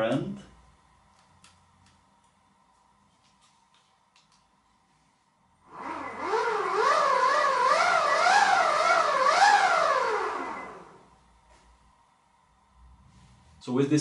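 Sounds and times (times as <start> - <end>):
electric motor whine: 5.7 - 11.1.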